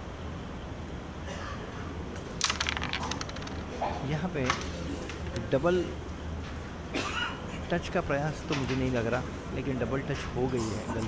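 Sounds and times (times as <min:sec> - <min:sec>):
wooden coins rattling: 0:02.3 - 0:03.9
striker clicking against coins: 0:02.4 - 0:03.8.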